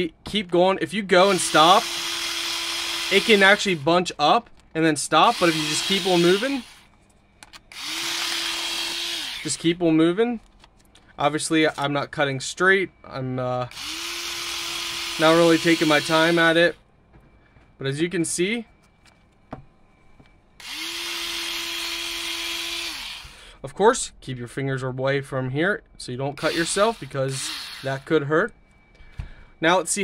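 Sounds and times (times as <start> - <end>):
electric scissors motor whirring: 1.3 - 3.8, 5.2 - 6.9, 7.7 - 9.6, 13.7 - 16.6, 20.6 - 23.4, 26.4 - 28.1.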